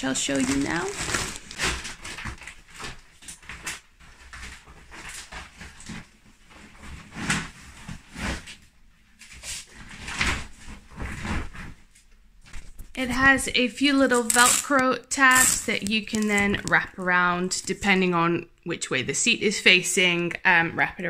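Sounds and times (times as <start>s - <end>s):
plastic rain cover crinkling: 0.0s - 18.2s.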